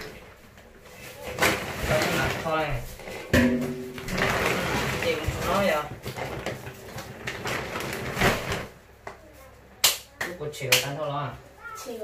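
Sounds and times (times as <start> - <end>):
plastic bag rustling: 0.0 - 8.8.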